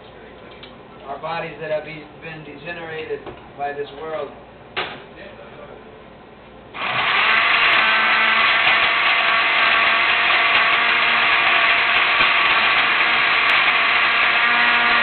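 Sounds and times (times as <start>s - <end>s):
countertop blender running: 6.8s - 15.0s.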